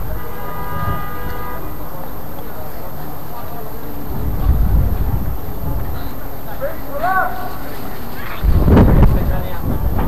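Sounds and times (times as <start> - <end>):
horn tone: 0.0 - 10.0.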